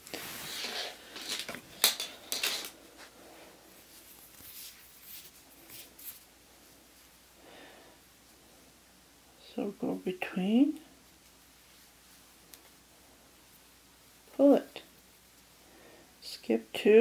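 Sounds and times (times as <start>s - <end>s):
yarn rustling and scraping: 0.0s - 7.3s.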